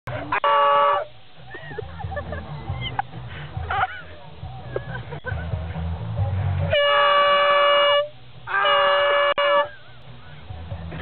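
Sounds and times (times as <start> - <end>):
air horn blast: 0.1 - 1.1, 6.7 - 9.8.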